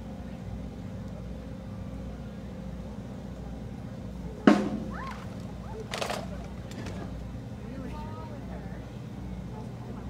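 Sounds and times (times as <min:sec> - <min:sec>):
murmur of crowd voices: 0:00.0 - 0:10.0.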